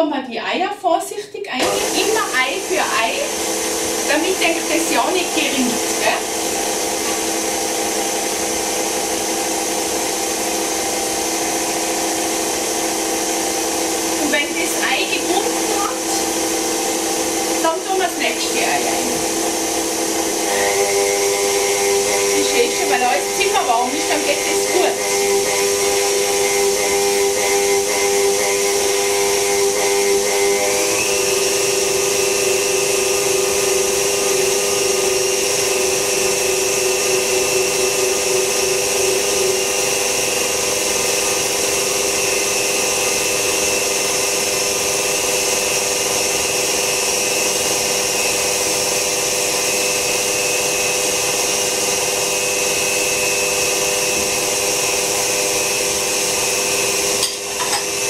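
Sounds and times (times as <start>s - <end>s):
stand mixer motor whine: 1.6s - 58.0s.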